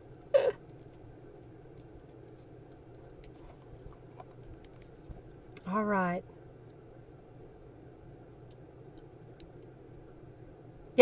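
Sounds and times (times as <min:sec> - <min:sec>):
person humming uh: 0:00.4 - 0:00.6.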